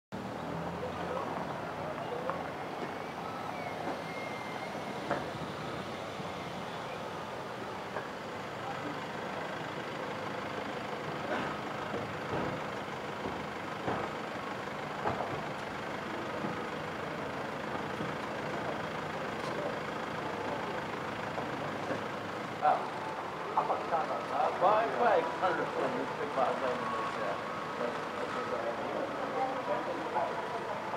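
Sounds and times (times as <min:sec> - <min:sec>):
car engine and road hum: 0:00.1 - 0:30.9.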